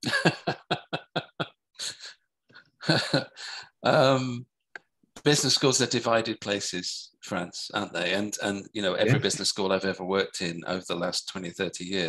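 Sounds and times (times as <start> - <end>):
man laughing: 0.0 - 2.1, 2.8 - 3.6, 9.1 - 9.4.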